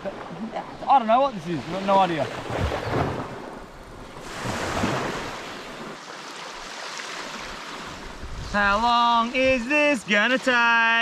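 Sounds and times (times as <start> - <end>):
small waves on sandy beach: 0.0 - 11.0.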